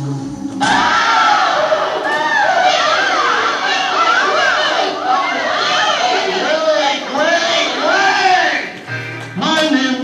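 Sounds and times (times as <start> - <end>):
children shouting and squealing: 0.7 - 8.8.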